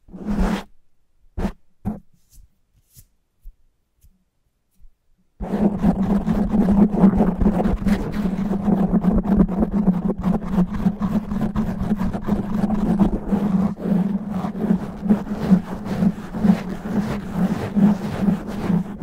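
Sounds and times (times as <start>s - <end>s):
fingernails scratching microphone windscreen: 0.1s - 0.7s, 1.4s - 2.0s, 5.4s - 19.0s.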